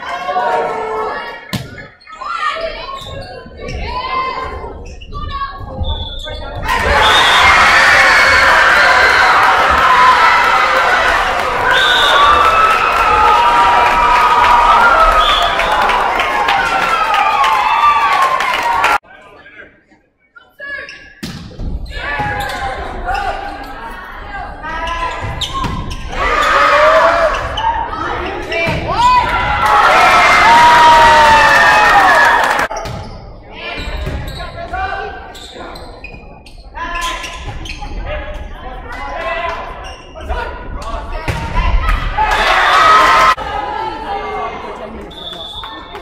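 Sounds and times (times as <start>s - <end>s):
people shouting and cheering: 0.0s - 19.1s, 21.8s - 32.8s, 38.0s - 46.0s.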